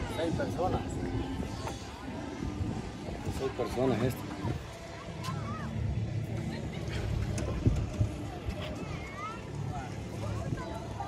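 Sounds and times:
distant crowd chatter: 0.0s - 11.0s.

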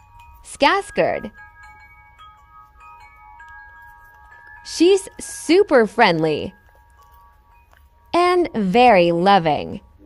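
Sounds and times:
faint chime notes ringing: 0.0s - 10.0s.

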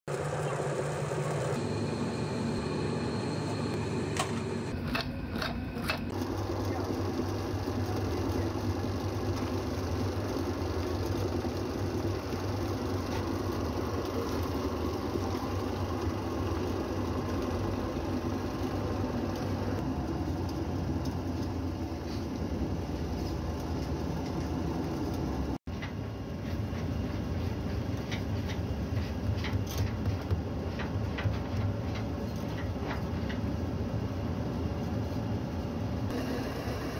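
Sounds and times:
workshop machinery drone: 0.1s - 36.9s.

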